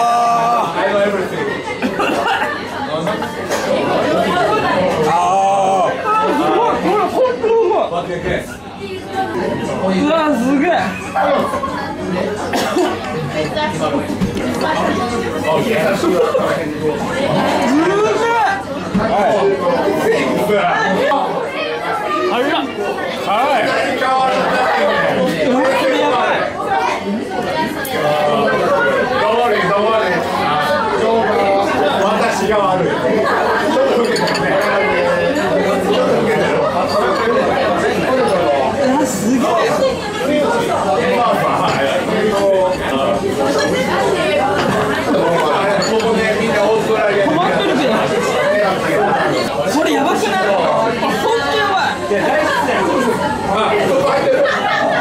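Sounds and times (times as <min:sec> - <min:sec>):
chatter of many diners: 0:00.0 - 0:55.0.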